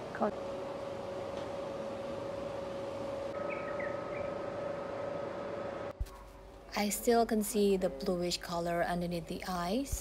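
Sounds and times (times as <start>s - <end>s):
noisy background ambience: 0.0s - 10.0s
steady hum: 0.0s - 10.0s.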